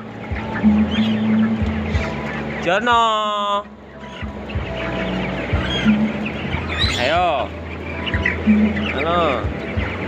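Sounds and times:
chicks cheeping and clucking: 0.0 - 10.0.

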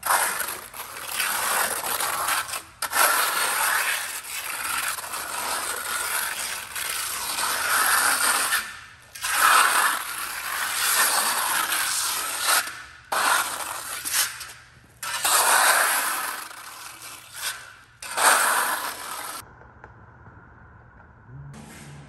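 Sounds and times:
trowel scraping wet cement: 0.0 - 19.4.

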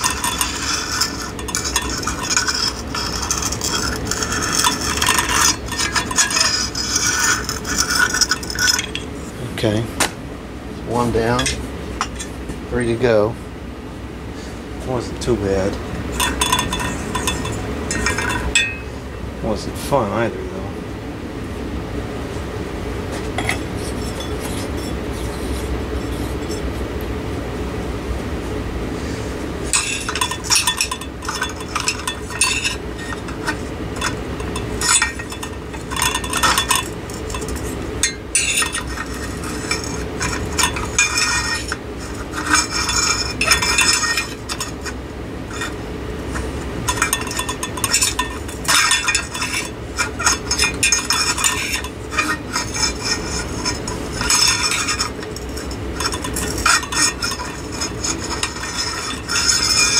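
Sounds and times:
metal clinking and scraping on glass: 0.0 - 9.1, 16.1 - 18.9, 23.4 - 26.6, 29.7 - 59.9
steady low hum: 0.0 - 59.9.

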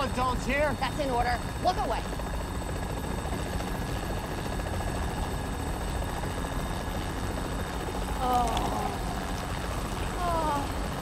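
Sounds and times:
helicopter engine and rotor drone: 0.0 - 11.0.

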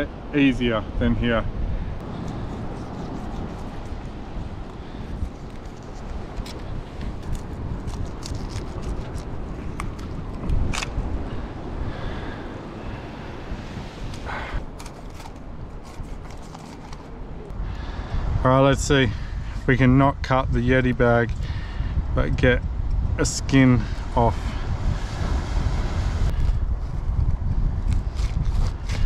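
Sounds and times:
wind: 0.0 - 29.0
knife scraping fish on rock: 7.2 - 9.4.

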